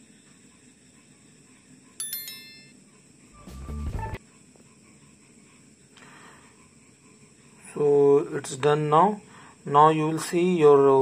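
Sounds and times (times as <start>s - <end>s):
bright bell-like ding: 2.0s - 2.8s
low short sound effect: 3.4s - 4.2s.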